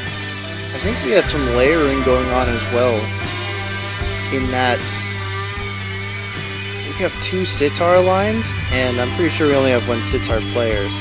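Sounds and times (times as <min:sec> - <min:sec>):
sitar lines: 0:00.0 - 0:11.0
steady low drone: 0:00.0 - 0:11.0.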